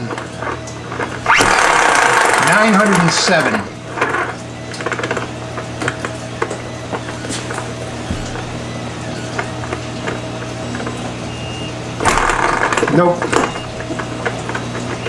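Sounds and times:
hand-crank generator whirring: 0:00.0 - 0:15.0.

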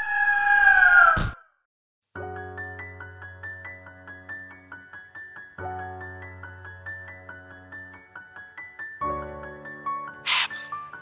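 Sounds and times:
drawn-out bird cry: 0:10.3 - 0:10.8.

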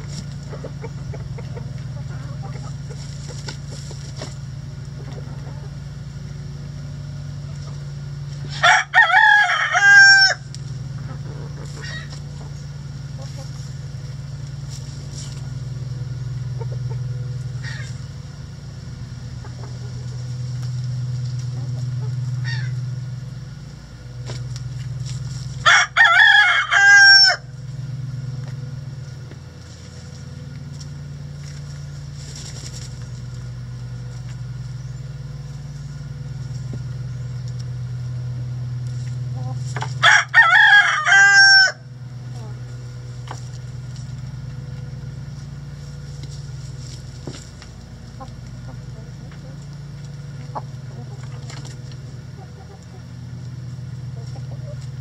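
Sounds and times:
rooster crowing: 0:08.5 - 0:10.5, 0:25.6 - 0:27.5, 0:40.0 - 0:41.9.

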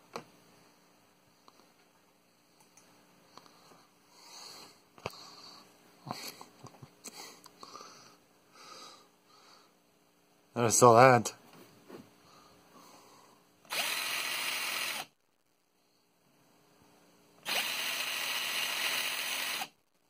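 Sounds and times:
breathing and sniffing: 0:03.4 - 0:09.8
soft handling noise: 0:11.4 - 0:12.2.

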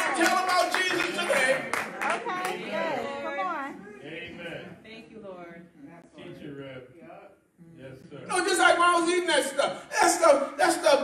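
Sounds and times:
congregation clapping: 0:00.0 - 0:02.7.

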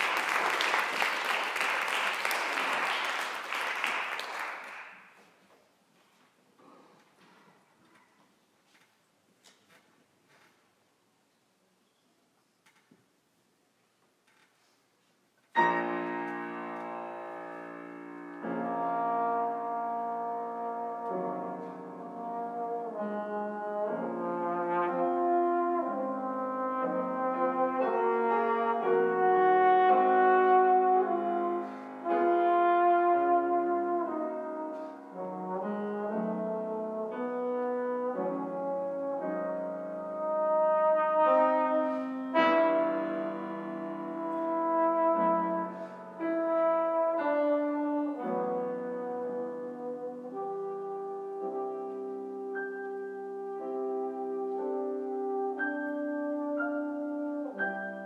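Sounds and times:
piano accompaniment: 0:15.5 - 0:58.0
brass instrument melody: 0:15.6 - 0:58.0.

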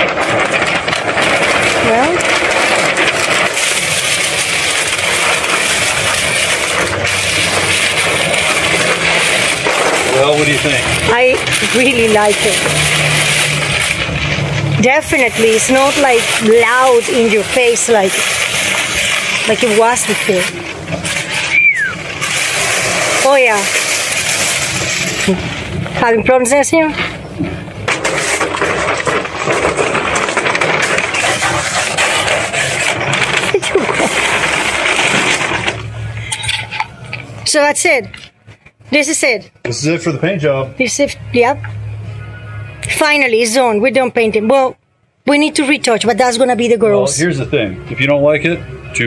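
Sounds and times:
pump motor: 0:00.0 - 0:25.4
steady rushing noise: 0:00.0 - 0:36.3.

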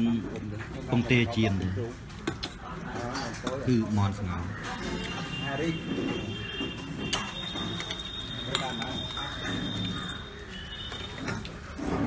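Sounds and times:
metal spoons clinking on steel bowls: 0:00.0 - 0:12.0.

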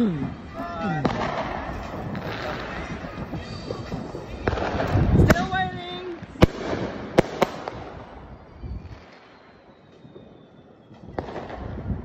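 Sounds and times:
firework crackling: 0:00.0 - 0:12.0
fireworks bangs: 0:00.3 - 0:12.0
falling firework whistle: 0:07.6 - 0:12.0.

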